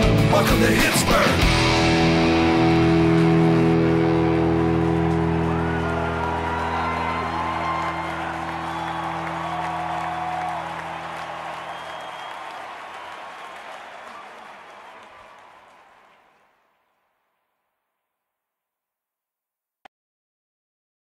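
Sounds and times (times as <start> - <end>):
crowd cheering and applause: 0.0 - 17.0.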